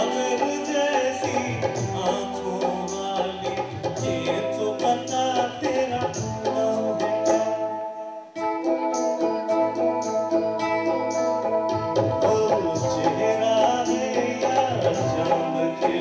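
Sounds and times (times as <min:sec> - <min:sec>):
man singing: 0:00.0 - 0:07.8, 0:12.1 - 0:16.0
tabla: 0:00.0 - 0:07.8, 0:10.9 - 0:16.0
guitar: 0:00.0 - 0:16.0
keyboard: 0:00.0 - 0:16.0.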